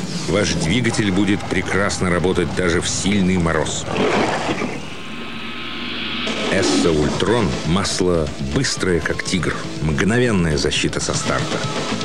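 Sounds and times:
engine-like rushing sound effect: 3.0s - 8.3s.

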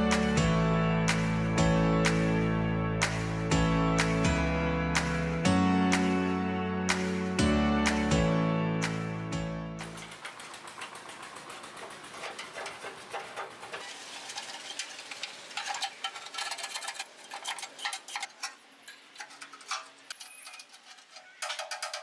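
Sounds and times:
guitar music: 0.0s - 9.8s
metal pick scraping rust: 9.8s - 22.0s.

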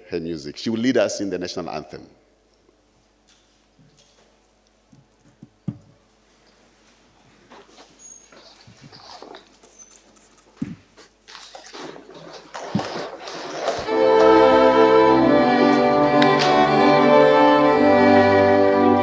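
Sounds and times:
shuffling and rustling: 6.0s - 14.8s
bowed-string anthem music: 13.6s - 19.0s.

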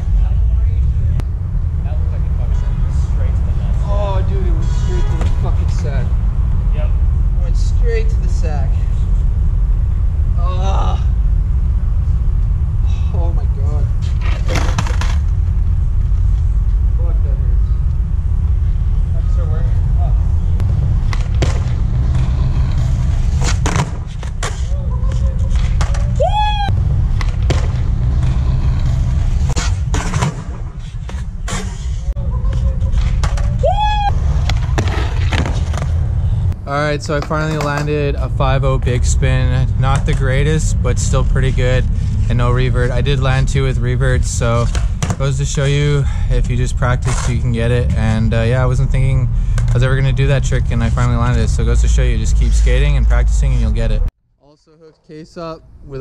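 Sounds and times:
skateboard wheels rolling: 14.0s - 15.7s, 20.9s - 32.0s, 32.6s - 36.2s.

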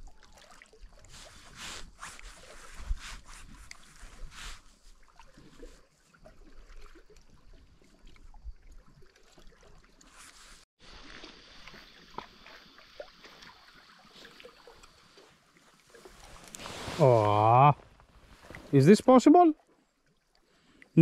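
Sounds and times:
sea water lapping among rocks: 0.0s - 18.8s.

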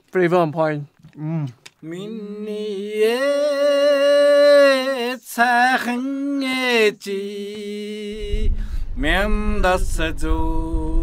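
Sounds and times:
man singing unaccompanied: 1.8s - 11.0s.

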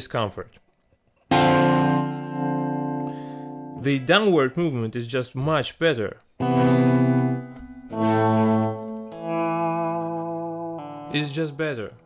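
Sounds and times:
clean electric guitar notes: 1.3s - 3.8s, 6.4s - 12.0s.

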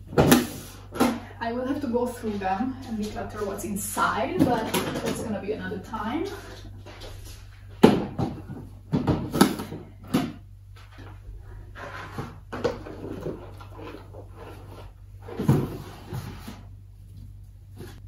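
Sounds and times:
cardboard boxes knocking and thudding: 7.8s - 10.4s
cardboard rustling and scraping: 10.8s - 18.0s.

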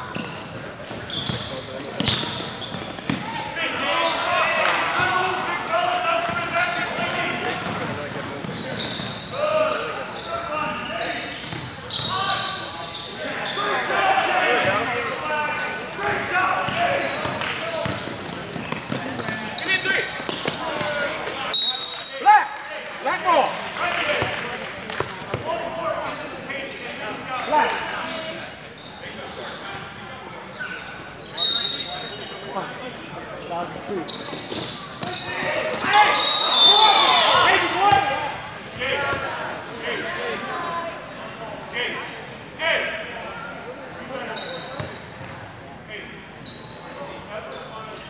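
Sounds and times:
referee's whistle blasts: 11.9s - 13.6s, 21.5s - 22.3s, 31.2s - 32.5s, 34.1s - 37.6s.

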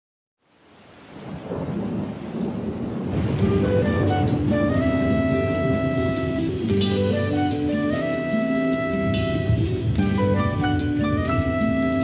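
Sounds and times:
rain: 0.4s - 12.0s
thunder rumble: 1.1s - 8.0s.

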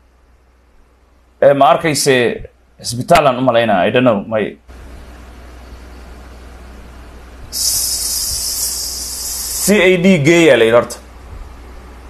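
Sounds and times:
high-pitched hissing buzz: 4.7s - 12.0s
person speaking: 7.5s - 11.1s.

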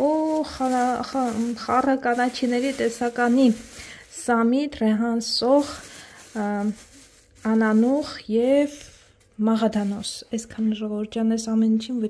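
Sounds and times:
person speaking: 0.0s - 10.9s.

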